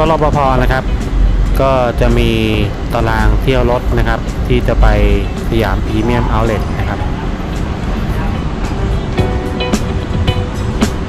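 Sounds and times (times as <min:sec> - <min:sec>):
man speaking: 0:00.0 - 0:00.9, 0:01.6 - 0:07.2
low steady rumble: 0:00.0 - 0:11.0.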